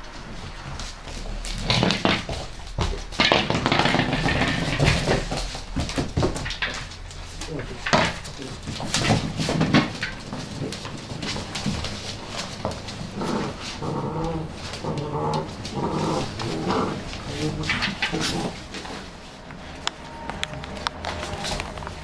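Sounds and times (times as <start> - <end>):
puppies growling: 0.0 - 19.8
claws scrabbling on hard floor: 0.2 - 19.6.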